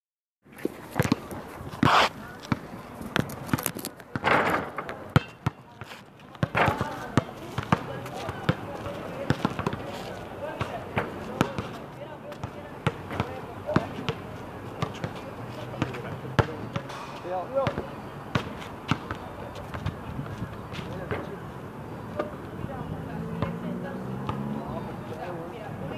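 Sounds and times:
basketballs bouncing on court: 1.0s - 3.3s, 6.4s - 14.2s, 14.8s - 16.9s, 17.6s - 20.0s.

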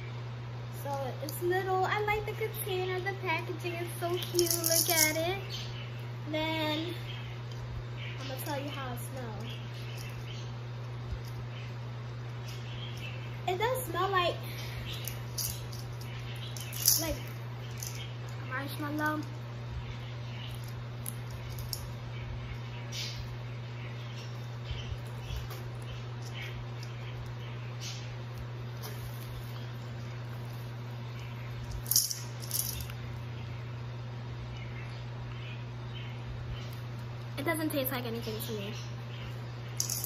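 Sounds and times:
steady low hum: 0.0s - 40.0s.

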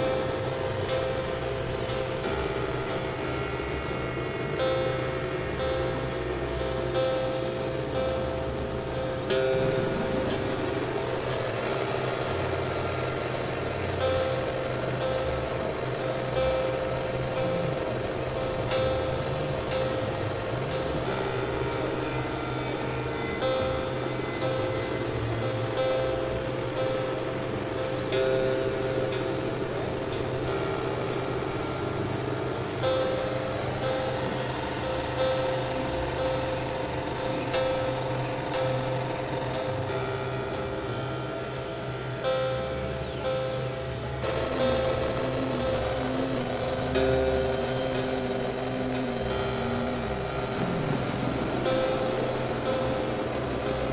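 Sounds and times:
steady low hum: 0.0s - 53.9s
sustained synthesizer tones: 0.0s - 53.9s.

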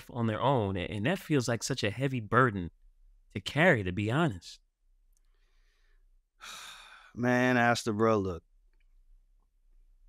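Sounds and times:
faint breath: 5.2s - 7.2s
man sighing: 6.4s - 7.2s.

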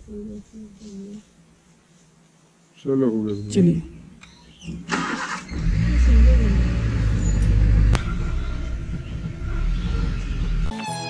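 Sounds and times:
vehicle engine rumbling: 4.6s - 10.7s.

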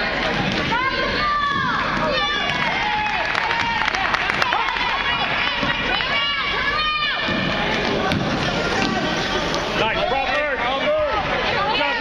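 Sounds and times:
court noise and voices: 0.0s - 12.0s.

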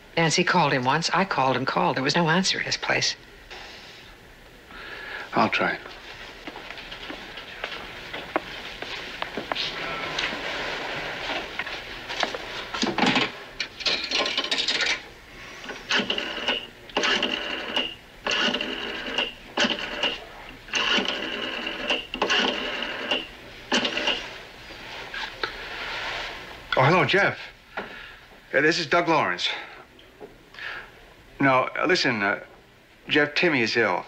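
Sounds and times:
rotary dial whirring and clicking: 12.8s - 24.3s.

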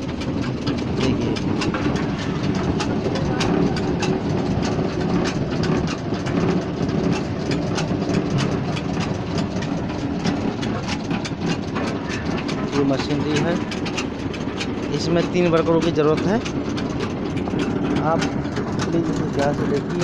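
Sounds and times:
machine clattering knocks: 0.0s - 20.0s
rice-flaking machine rumbling: 0.0s - 20.0s.

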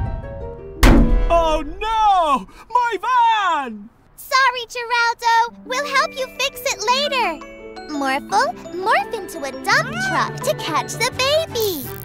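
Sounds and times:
loud thunk: 0.8s - 1.9s.

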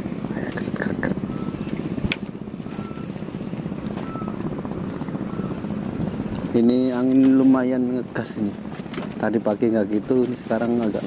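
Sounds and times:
low rumble: 0.0s - 8.7s
wind buffeting microphone: 0.0s - 11.0s.

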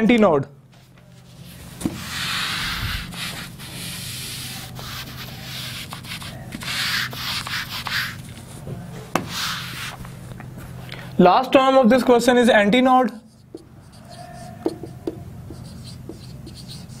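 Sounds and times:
eraser rubbing on whiteboard: 1.3s - 8.3s, 9.2s - 10.0s, 13.3s - 17.0s.

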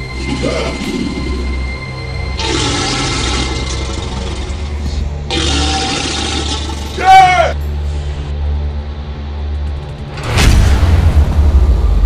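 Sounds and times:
low music drone: 0.0s - 12.0s
crocodile hissing: 2.4s - 4.7s
man yelling: 6.9s - 7.6s.

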